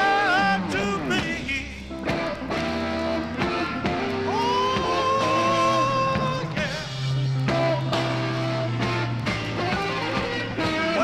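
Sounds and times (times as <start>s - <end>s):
electric blues band playing: 0.0s - 11.0s.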